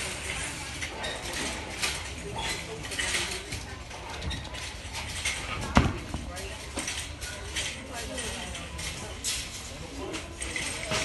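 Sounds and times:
noisy background: 0.0 - 11.0.

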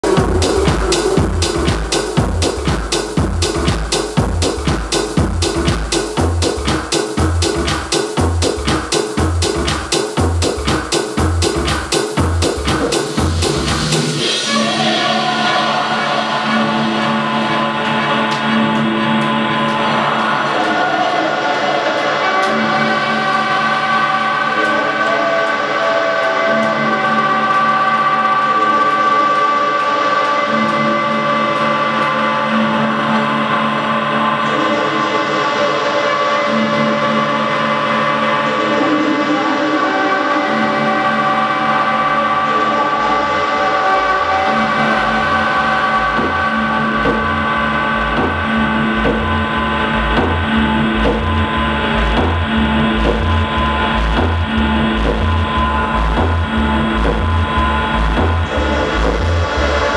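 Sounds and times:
low kick and bass beat: 0.0 - 14.8, 44.1 - 59.9
sustained synth chords and drones: 0.0 - 59.9.

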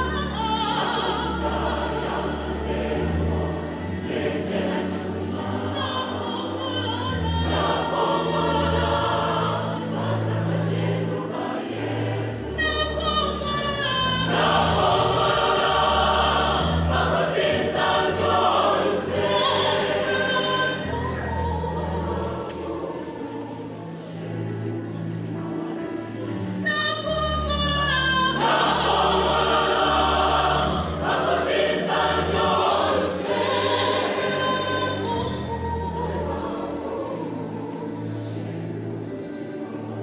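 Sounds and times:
choir singing gospel: 0.0 - 40.0.

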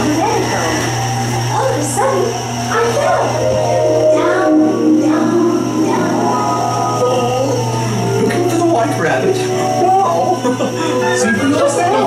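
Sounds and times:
music with sliding pitches: 0.0 - 12.0
steady low hum: 0.0 - 12.0.

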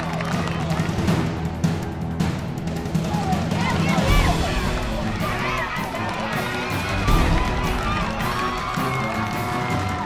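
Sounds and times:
background music with low bass: 0.0 - 10.0
crowd shouting and cheering: 0.0 - 10.0
high voices calling out: 3.3 - 9.2.

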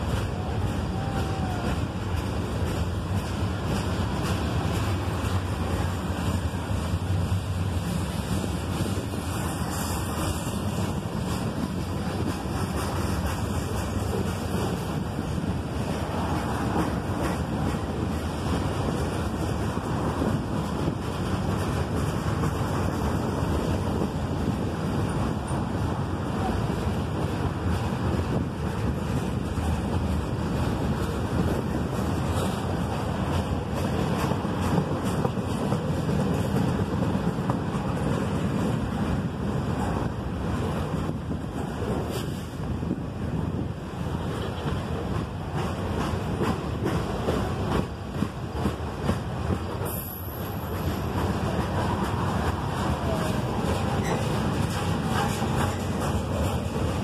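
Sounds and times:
steel wheels rumbling on rails: 0.0 - 57.0
wind noise on microphone: 0.0 - 57.0.

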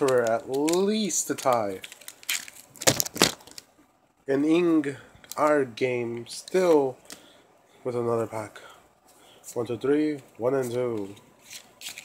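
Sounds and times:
foil wrapper crinkling: 0.0 - 3.7, 11.4 - 12.0.

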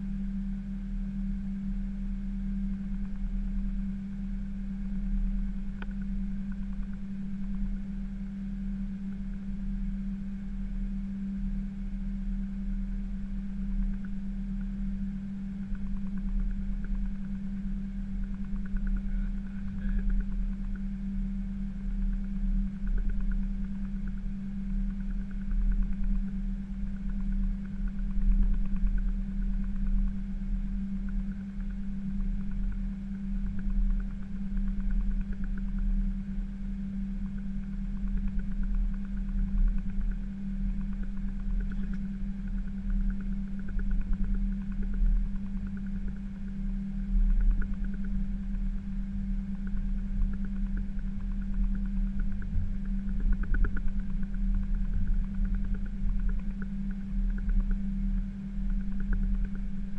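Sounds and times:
cockpit engine hum: 0.0 - 59.9
uneven rumble: 11.7 - 59.9.

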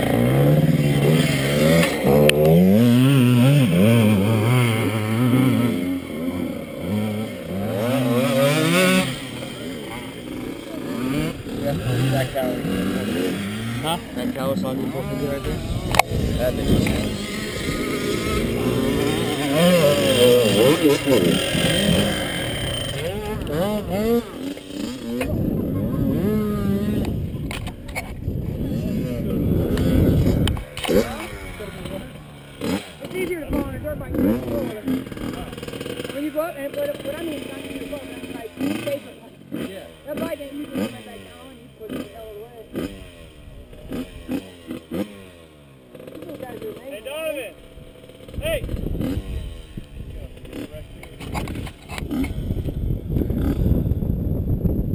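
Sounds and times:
atv engines revving and idling: 0.0 - 54.9.

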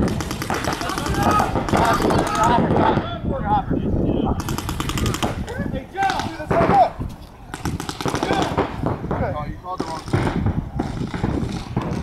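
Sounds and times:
paintball markers firing: 0.0 - 2.6, 4.4 - 5.4, 6.0 - 6.8, 7.5 - 9.2, 9.8 - 12.0
player shouting: 0.8 - 2.7.

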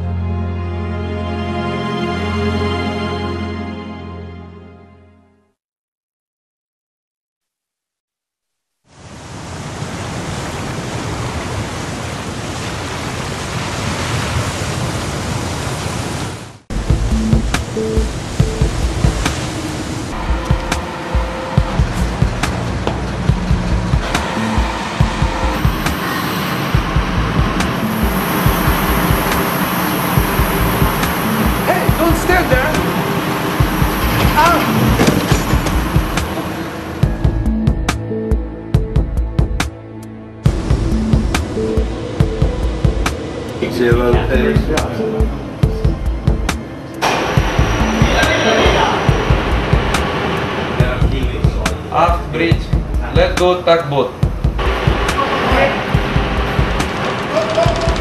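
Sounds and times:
steady rushing noise: 9.1 - 38.0, 40.4 - 58.0
low rumble: 16.7 - 39.6, 40.4 - 53.4, 54.3 - 58.0
high whine: 16.7 - 53.3, 54.3 - 58.0
knocks and clanks on deck: 34.1 - 36.4.

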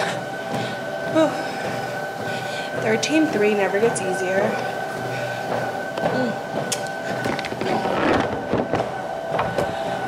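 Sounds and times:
treadmill motor hum and whine: 0.0 - 10.0.

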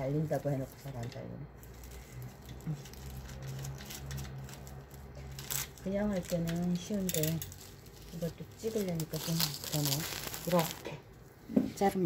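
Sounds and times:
plastic film crinkling and tearing: 0.2 - 11.1.

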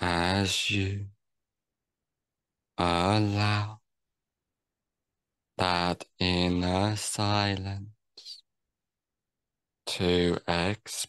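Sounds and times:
man speaking slowly: 0.0 - 1.2, 2.8 - 3.9, 5.6 - 8.4, 9.9 - 11.0.

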